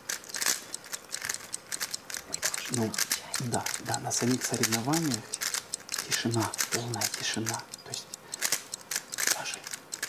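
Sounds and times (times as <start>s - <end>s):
plastic puzzle cube clicking: 0.0s - 10.0s.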